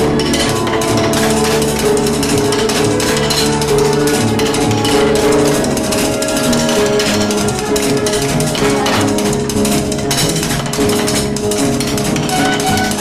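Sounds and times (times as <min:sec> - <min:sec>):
band playing instrumental: 0:00.0 - 0:13.0.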